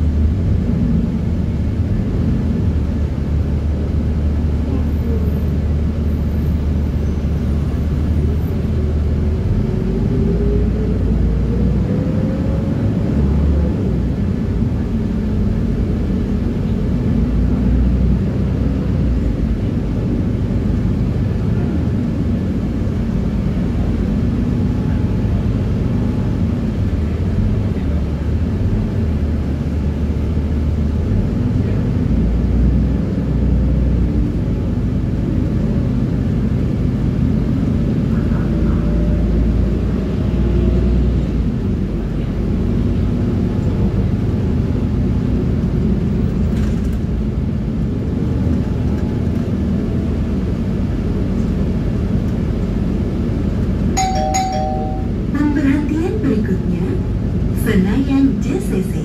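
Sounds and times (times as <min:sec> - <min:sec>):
bus engine and road rumble: 0:00.0 - 0:59.0.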